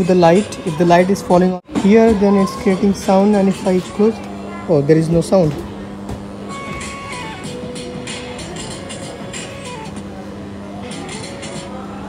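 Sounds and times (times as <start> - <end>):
steady low hum: 0.0 - 12.0
electronic musical tones: 6.4 - 11.8.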